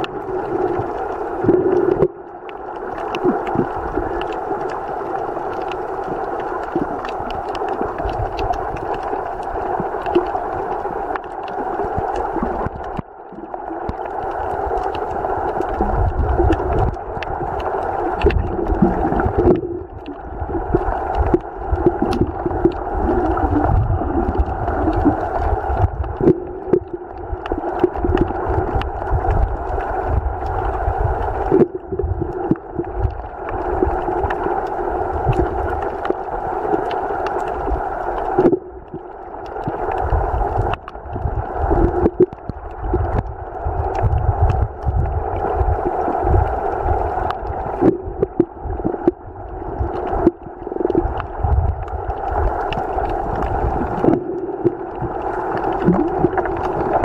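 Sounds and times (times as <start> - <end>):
low rumbling water movement: 0.0 - 57.0
muffled underwater hum: 0.0 - 57.0
faint clicks: 24.3 - 41.0.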